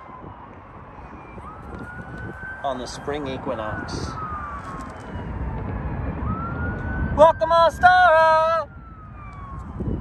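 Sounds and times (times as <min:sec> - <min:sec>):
city traffic rumble: 0:00.0 - 0:10.0
siren wailing: 0:00.0 - 0:10.0.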